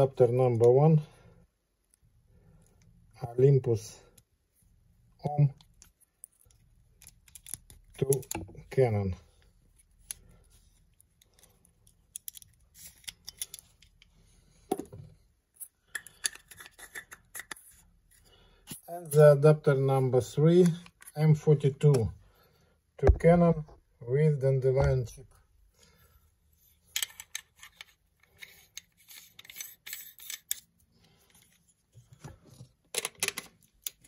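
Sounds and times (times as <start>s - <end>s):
metal clicks and thread scrapes: 26.8s - 31.7s.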